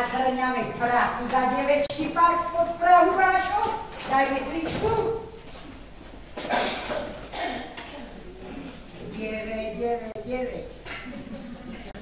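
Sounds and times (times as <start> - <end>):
room sound: 0.0 - 12.0.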